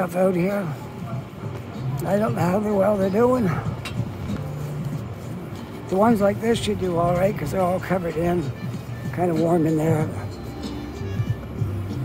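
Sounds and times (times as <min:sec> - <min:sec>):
car traffic: 0:00.0 - 0:12.0
faint music: 0:00.0 - 0:12.0.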